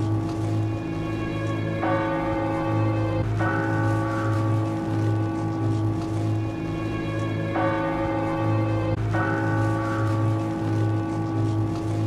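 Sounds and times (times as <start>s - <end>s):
church bell tolling: 0.0s - 12.0s
low pulsing hum: 0.0s - 12.0s.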